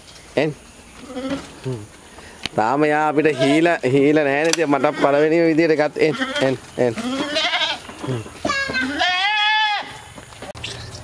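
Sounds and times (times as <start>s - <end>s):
goat bleating: 1.0s - 1.8s, 3.0s - 10.1s.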